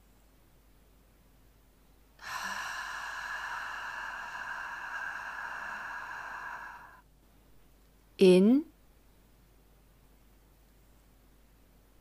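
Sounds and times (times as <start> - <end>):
woman breathing out hissing: 2.2 - 7.0.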